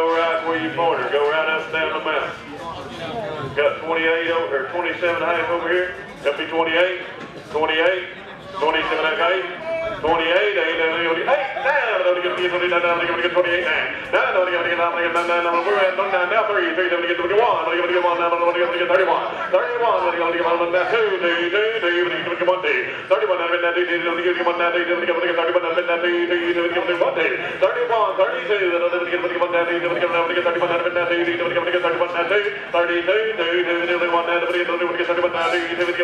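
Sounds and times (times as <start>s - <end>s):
auctioneer chanting bids: 0.0s - 2.5s, 3.3s - 36.0s.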